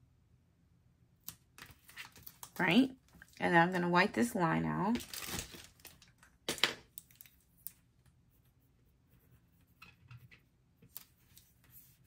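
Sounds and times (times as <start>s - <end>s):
paper and stickers handling: 1.2s - 4.1s, 4.9s - 6.3s, 10.8s - 12.0s.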